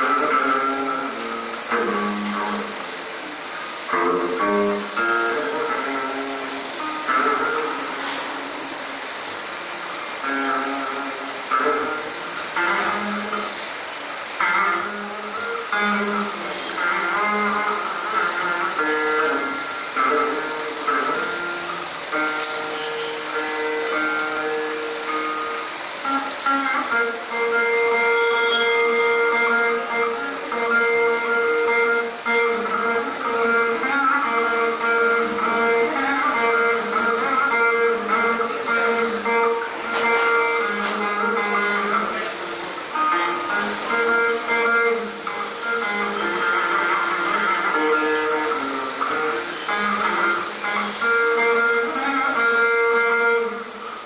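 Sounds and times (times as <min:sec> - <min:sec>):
veena plucked notes: 0:00.0 - 0:54.0.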